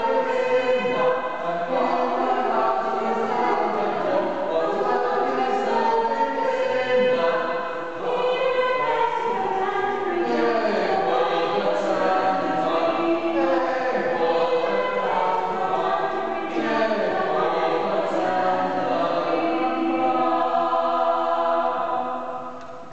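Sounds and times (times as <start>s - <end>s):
a cappella ensemble singing: 0.0s - 22.9s.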